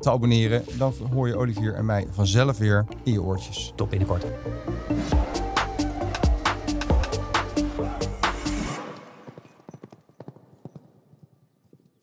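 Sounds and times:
faint horse hooves clip-clop: 8.8s - 12.0s.

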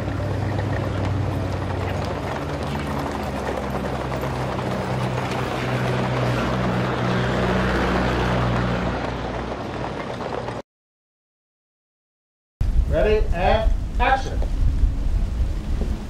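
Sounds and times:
rumble on dirt street: 0.0s - 10.6s, 12.6s - 16.0s
vehicle engine humming: 0.0s - 10.6s.

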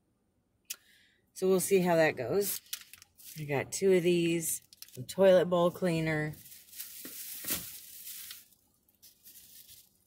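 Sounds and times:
rustling of shopping items: 1.6s - 10.0s.

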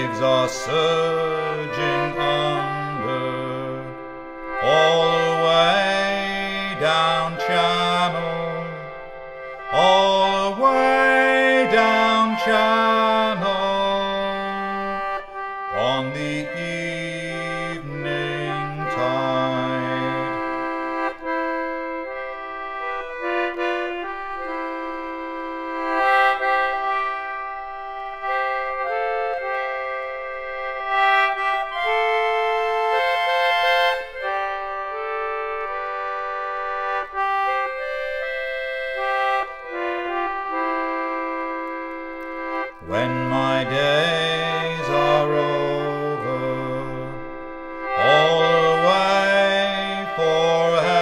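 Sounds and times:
concertina playing: 0.0s - 51.0s.

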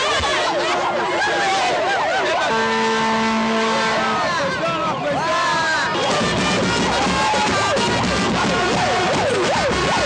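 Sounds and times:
crowd voices: 0.0s - 10.0s
steady horn note: 2.4s - 4.2s, 6.0s - 10.0s.

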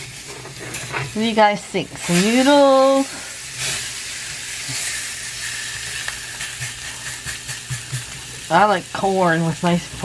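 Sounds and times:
meat sizzling in a skillet: 0.0s - 10.0s.

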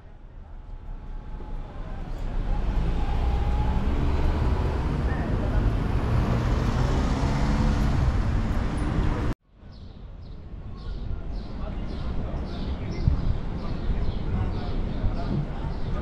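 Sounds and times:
traffic engine and road rumble: 0.0s - 16.0s.

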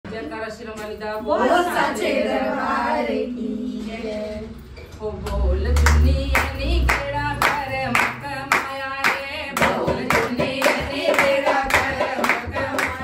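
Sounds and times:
women singing devotional song: 0.1s - 13.0s
hand clapping: 5.3s - 13.0s.

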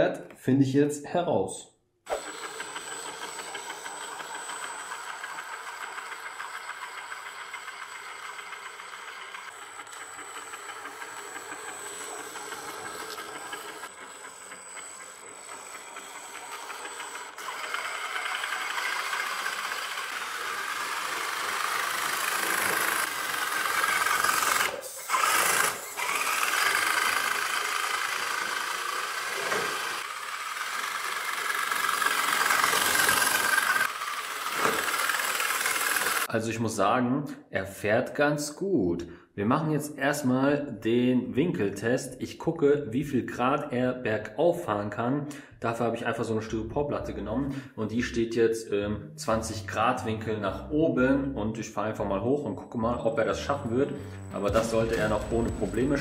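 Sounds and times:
electric motor whirring: 2.1s - 36.3s, 53.4s - 56.0s.

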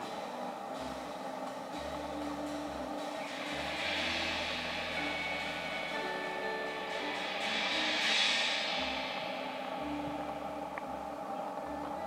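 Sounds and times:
upright double bass notes: 0.0s - 8.0s, 8.7s - 12.0s
drum cymbals: 0.0s - 12.0s
electric guitar: 0.0s - 12.0s
piano: 0.0s - 12.0s.

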